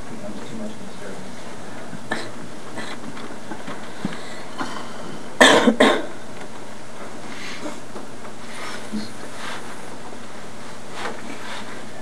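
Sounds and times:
steady background noise: 0.0 - 12.0
person coughing: 2.1 - 3.0, 4.6 - 6.2.

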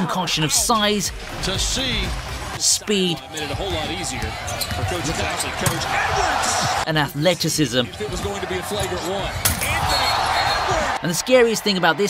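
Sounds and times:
arena crowd noise: 0.0 - 12.0
commentator talking: 0.0 - 12.0.

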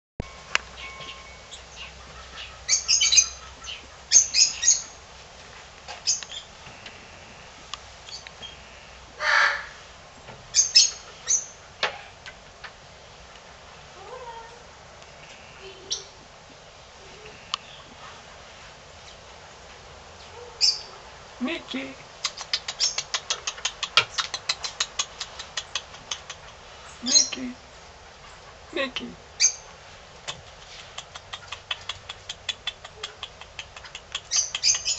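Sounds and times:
birds chirping shrilly: 0.7 - 5.0, 31.1 - 34.9
kinkajou smacking its mouth: 22.2 - 26.7, 30.2 - 34.9.

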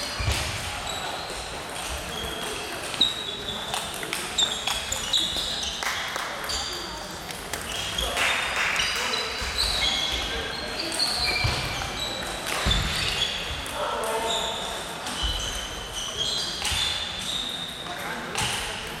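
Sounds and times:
background chatter: 0.0 - 19.0.

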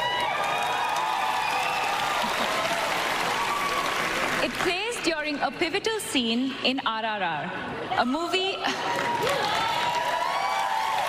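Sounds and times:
cheering voices: 0.0 - 4.6, 8.7 - 11.0
audience applauding: 0.0 - 5.0, 8.8 - 11.0.

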